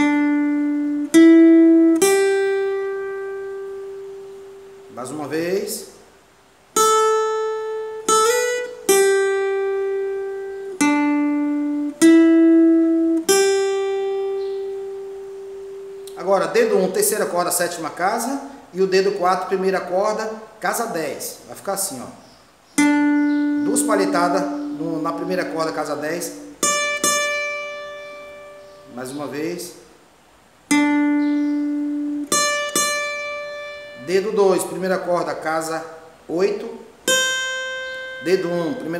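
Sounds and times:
acoustic guitar melody: 0.0s - 38.9s.

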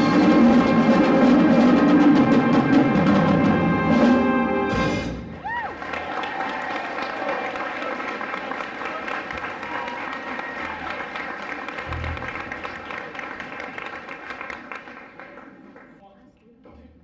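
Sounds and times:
audience applauding: 5.4s - 16.0s.

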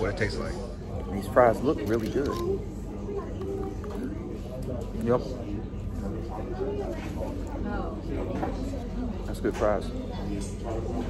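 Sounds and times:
indistinct background chatter: 0.0s - 11.0s.

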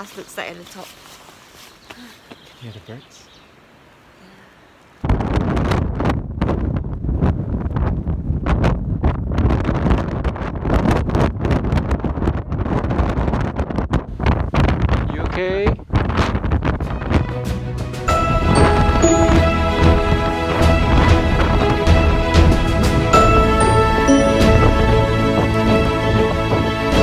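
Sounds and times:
wind buffeting microphone: 5.0s - 17.4s, 18.1s - 24.0s, 24.6s - 27.0s
background music: 17.2s - 27.0s.

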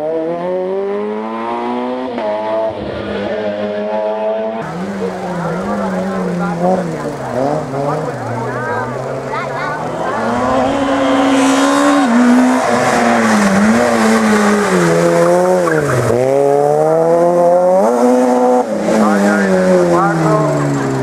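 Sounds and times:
rally car engine revving: 0.0s - 21.0s.

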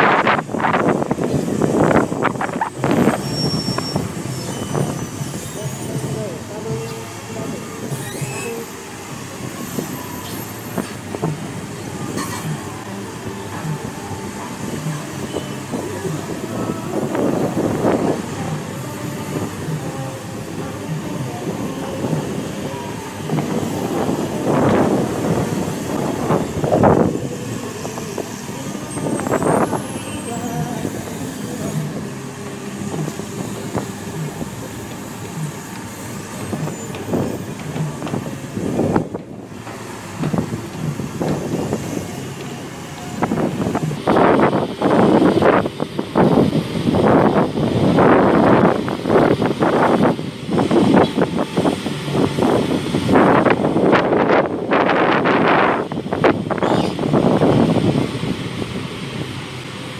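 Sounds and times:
background voices: 0.0s - 56.5s
excavator diesel engine rumble: 0.0s - 59.9s.

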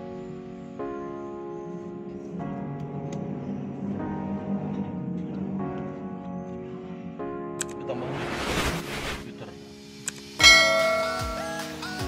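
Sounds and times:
background music: 0.0s - 12.0s
click: 7.6s - 7.8s, 10.0s - 10.2s
bell-like chime: 10.4s - 12.0s.

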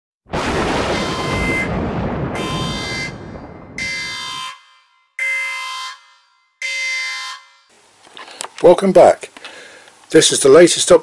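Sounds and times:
alarm horn blasts: 0.8s - 7.7s.

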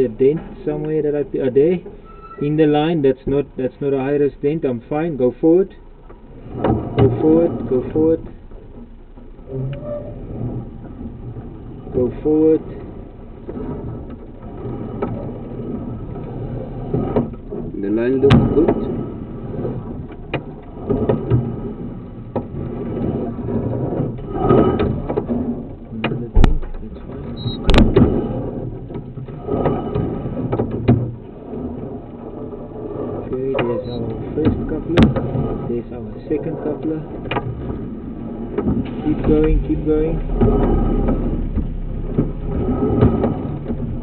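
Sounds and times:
push rod rumbling and rattling: 0.0s - 44.0s
indistinct voices: 9.4s - 10.3s, 25.9s - 28.1s, 33.3s - 37.1s, 38.9s - 43.6s
sharp knocks: 26.0s - 28.3s.

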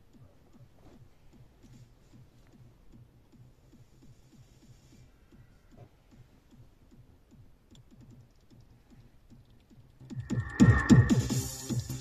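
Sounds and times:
light ticking percussion: 0.0s - 12.0s
steady kick drum: 1.3s - 12.0s
electronic dance music: 10.1s - 12.0s.

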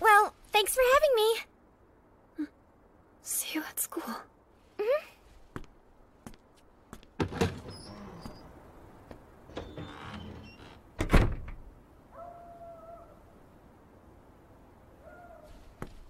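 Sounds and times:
door thudding shut: 11.0s - 11.6s.

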